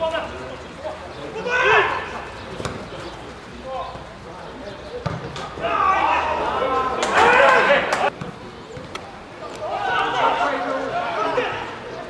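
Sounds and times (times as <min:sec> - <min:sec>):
players shouting: 0:00.0 - 0:04.1, 0:05.1 - 0:08.2, 0:09.5 - 0:12.0
football kicked with dull thump: 0:02.6 - 0:02.9, 0:05.0 - 0:05.4.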